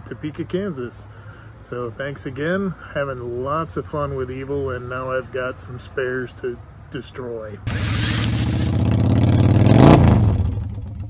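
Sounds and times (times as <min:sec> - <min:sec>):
motorcycle engine revving past: 0:07.7 - 0:11.0.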